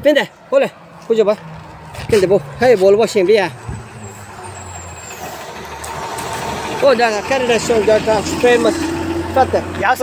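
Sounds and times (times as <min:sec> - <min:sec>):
man talking: 0:00.0 - 0:01.4, 0:02.0 - 0:03.7, 0:06.8 - 0:10.0
engine hum: 0:00.3 - 0:10.0.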